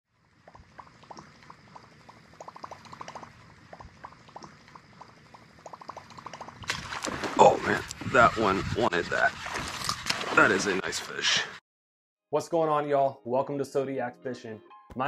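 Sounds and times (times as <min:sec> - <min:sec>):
fish striking with splash: 0:06.6 - 0:07.6.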